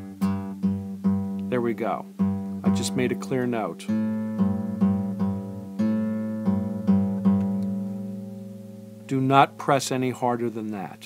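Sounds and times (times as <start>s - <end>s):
acoustic guitar note plucked: 0.0s - 11.0s.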